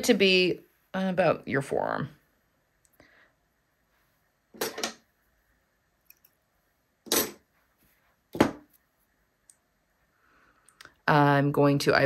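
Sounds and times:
thread and needle rustling: 2.3s - 10.0s.

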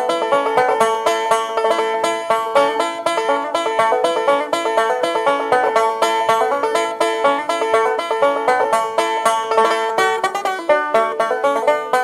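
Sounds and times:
banjo picking: 0.0s - 12.0s
string band instrumental: 0.0s - 12.0s.

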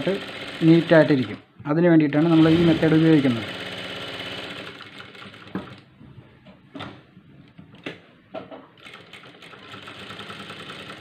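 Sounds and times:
sewing machine stitching: 0.0s - 1.4s, 2.1s - 5.8s, 8.8s - 11.0s.

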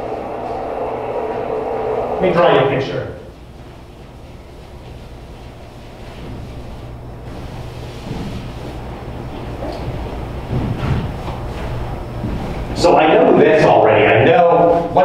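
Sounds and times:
ventilation hum: 0.0s - 15.0s.

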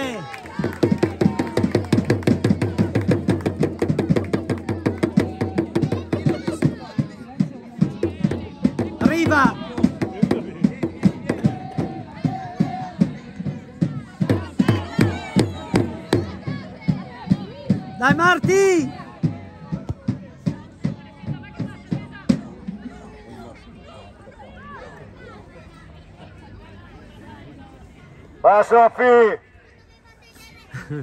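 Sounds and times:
crowd chanting: 0.0s - 21.7s
fast rhythmic beat: 0.5s - 22.7s.

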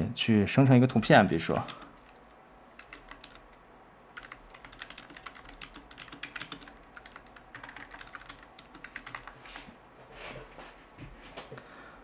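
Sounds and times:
typing on computer keyboard: 1.6s - 2.2s, 2.8s - 9.4s.

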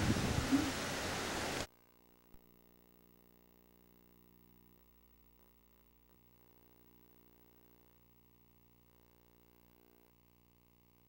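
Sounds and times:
recording hiss: 0.0s - 1.7s.

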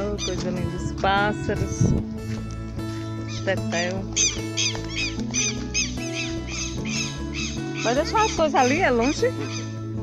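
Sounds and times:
background music: 0.0s - 10.0s
lapwings calling shrilly: 3.2s - 9.8s.

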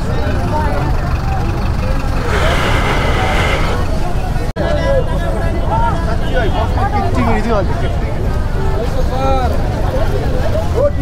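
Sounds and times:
crowd voices: 0.0s - 11.0s
traffic rumble: 0.0s - 11.0s.

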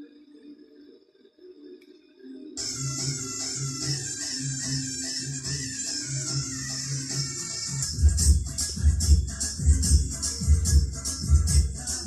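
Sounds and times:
music through speakers: 0.0s - 12.0s.

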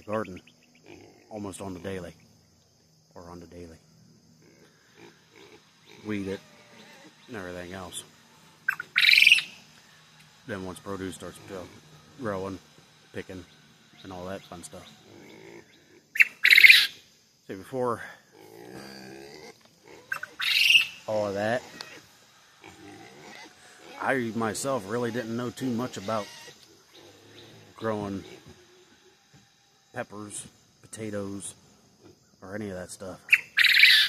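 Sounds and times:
bird calling: 0.0s - 3.3s, 4.4s - 17.2s, 19.6s - 29.5s, 30.4s - 34.0s.

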